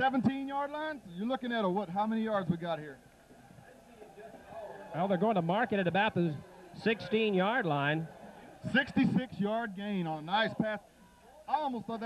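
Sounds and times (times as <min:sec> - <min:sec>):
faint background voices: 0:01.2 - 0:12.0.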